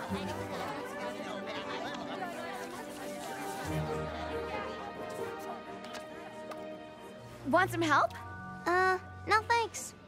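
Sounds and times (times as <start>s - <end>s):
many voices chattering: 0.0s - 7.3s
background music: 0.0s - 10.0s.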